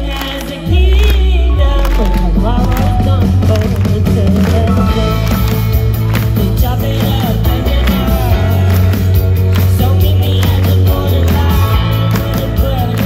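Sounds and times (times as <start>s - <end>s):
live band playing loud: 0.0s - 13.0s
singer's voice: 0.0s - 13.0s.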